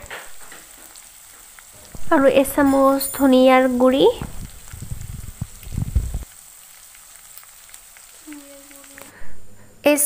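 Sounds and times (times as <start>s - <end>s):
chicken frying in oil: 0.0s - 9.2s.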